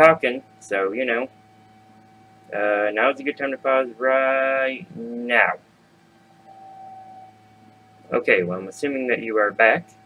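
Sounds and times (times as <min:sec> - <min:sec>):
faint steady tone: 0:00.0 - 0:10.0
low background hum: 0:00.0 - 0:10.0.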